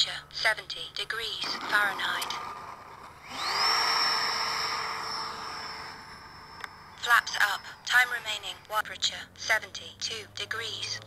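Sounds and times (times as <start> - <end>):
model jet fan whine: 1.8 - 8.8.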